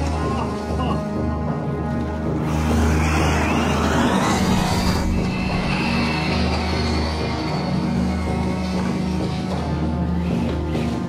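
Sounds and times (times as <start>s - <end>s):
background music: 0.0s - 11.0s
electric motor whining: 2.3s - 10.7s.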